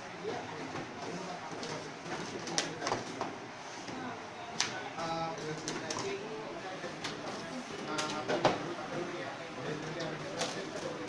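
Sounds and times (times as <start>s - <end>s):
room murmur: 0.0s - 11.0s.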